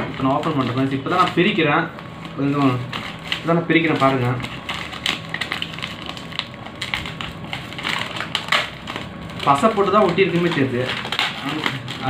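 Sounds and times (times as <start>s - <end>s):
paper tearing and crumpling: 0.0s - 12.0s.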